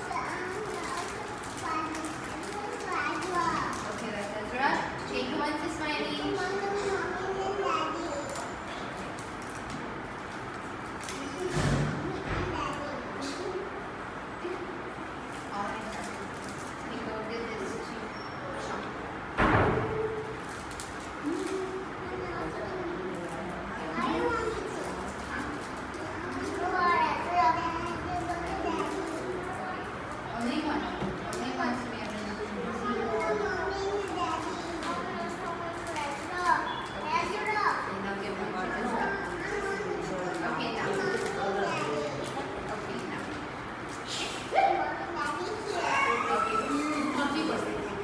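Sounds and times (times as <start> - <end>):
young children talking: 0.0 - 48.0.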